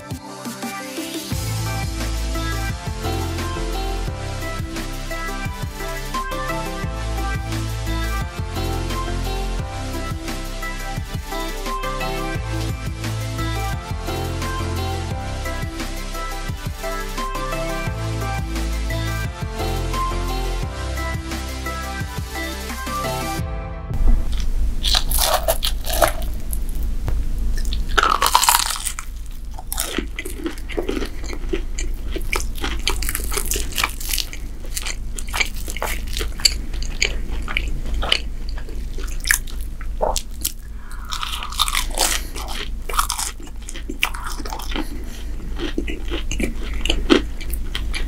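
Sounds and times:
crunchy food being chewed: 0:24.3 - 0:26.9, 0:27.6 - 0:48.0.

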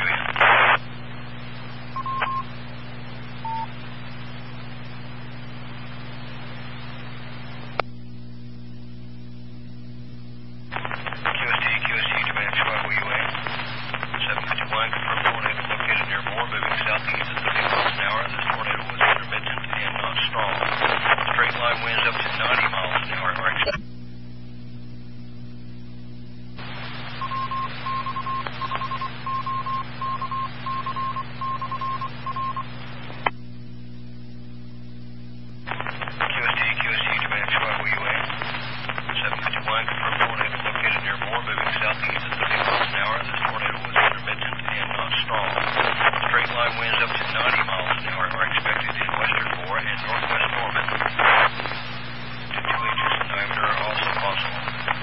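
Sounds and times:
hissing radio carrier: 0:00.0 - 0:07.8, 0:10.7 - 0:23.8, 0:26.6 - 0:33.3, 0:35.6 - 0:55.0
static-filled radio transmissions: 0:00.0 - 0:08.0, 0:10.6 - 0:23.8, 0:26.6 - 0:33.4, 0:35.6 - 0:55.0
low hum: 0:00.0 - 0:55.0.

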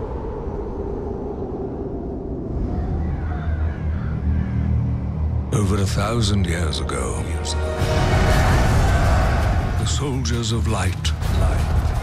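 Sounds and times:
steady low tone: 0:00.0 - 0:10.2
low rumbling drone: 0:00.0 - 0:12.0.

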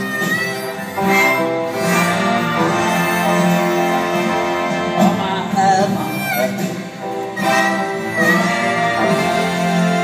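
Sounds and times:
guitar: 0:00.0 - 0:10.0
orchestral strings: 0:00.0 - 0:10.0.

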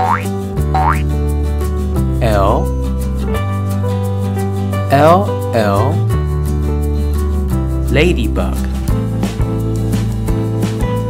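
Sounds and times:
cartoon jump sound effects: 0:00.0 - 0:01.0
children's song backing music: 0:02.2 - 0:03.5, 0:04.8 - 0:06.1, 0:07.8 - 0:08.8.

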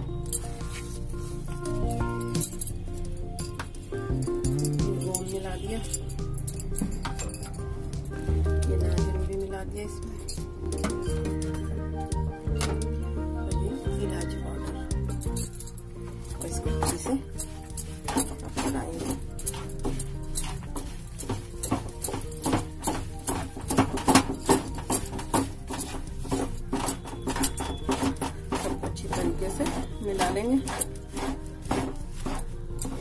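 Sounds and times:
background music: 0:00.0 - 0:33.0
spatula scraping nonstick pan: 0:16.3 - 0:33.0.

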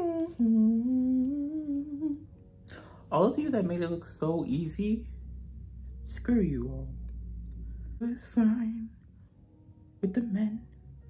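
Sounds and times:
woman humming: 0:00.0 - 0:02.4.

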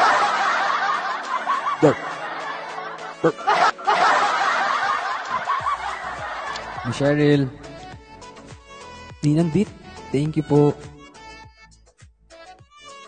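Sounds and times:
group of people laughing: 0:00.0 - 0:07.3.

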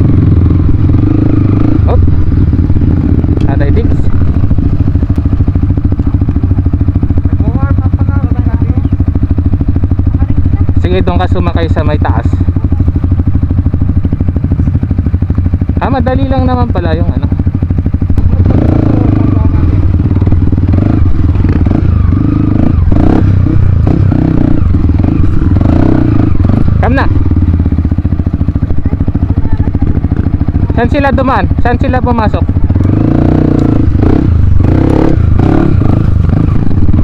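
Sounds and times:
dirt bike engine idling: 0:00.0 - 0:37.0.

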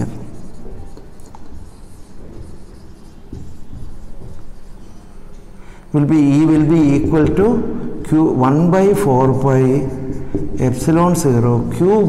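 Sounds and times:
marker pen writing on whiteboard: 0:00.0 - 0:12.0.

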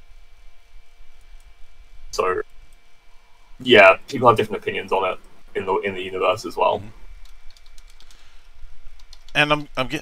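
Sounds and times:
computer keyboard typing: 0:07.2 - 0:08.2, 0:09.0 - 0:09.4.

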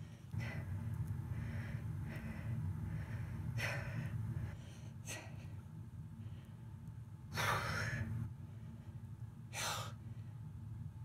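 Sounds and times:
man breathing hard: 0:00.0 - 0:05.6
steady low hum: 0:00.0 - 0:11.0.

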